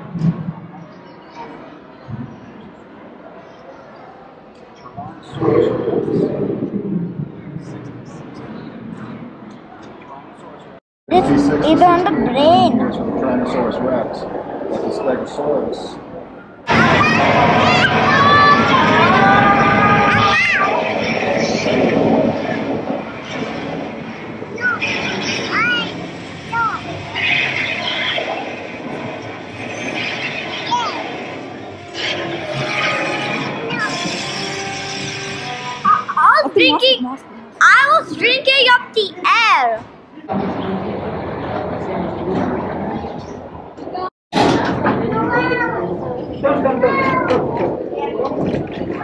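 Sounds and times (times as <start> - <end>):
crowd babble indoors: 0.0 - 49.0
blower fans rushing air: 11.1 - 39.0, 39.8 - 49.0
child's high-pitched voice: 16.7 - 20.8, 24.6 - 27.0, 30.7 - 31.0, 33.6 - 34.1, 35.9 - 39.9, 45.1 - 46.0.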